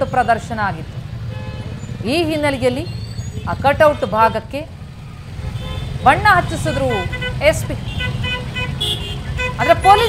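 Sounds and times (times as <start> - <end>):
traffic rumble: 0.0 - 10.0
faint car horn: 6.6 - 10.0.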